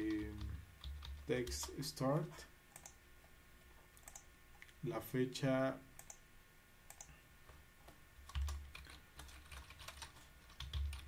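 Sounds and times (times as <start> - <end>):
keyboard keystroke clicks: 4.0 - 4.3.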